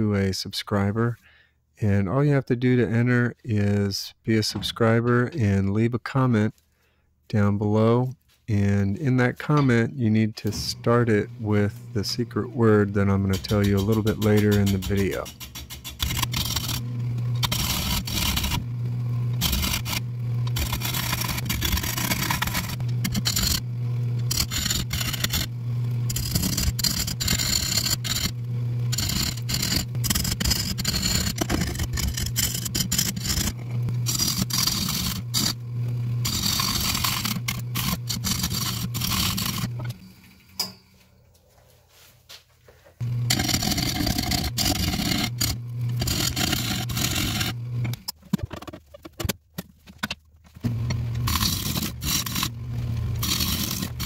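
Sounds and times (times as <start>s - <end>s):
turning tool cutting wood: 10.4s - 40.0s, 43.0s - 49.4s, 50.6s - 54.0s
lathe motor humming: 10.7s - 40.0s, 43.0s - 48.1s, 50.6s - 54.0s.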